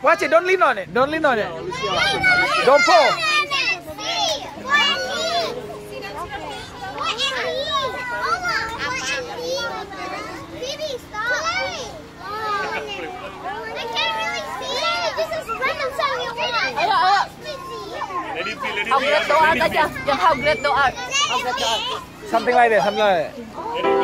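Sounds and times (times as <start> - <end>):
children talking and calling out: 0.0 - 24.0.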